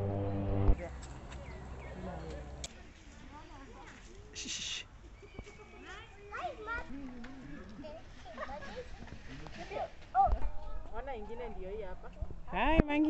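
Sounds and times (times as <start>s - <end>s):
background chatter: 0.8s - 13.0s
children's voices: 5.4s - 11.0s.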